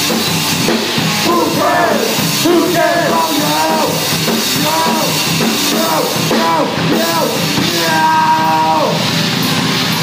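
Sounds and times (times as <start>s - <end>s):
live metal band playing: 0.0s - 10.0s.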